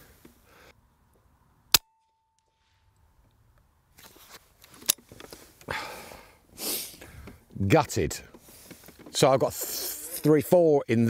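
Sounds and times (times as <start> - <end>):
faint steady ring: 1.8 - 2.9
soft rustling: 3.9 - 5.6.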